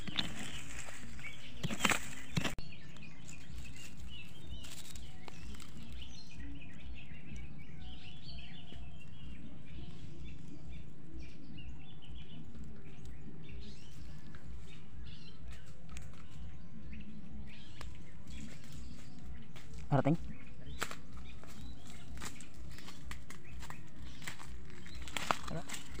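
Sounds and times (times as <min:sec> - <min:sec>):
small birds chirping: 0:00.0 - 0:26.0.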